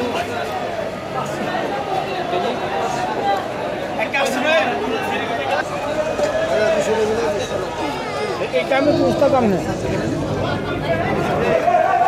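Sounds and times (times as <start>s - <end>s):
people talking in market: 0.0s - 12.0s.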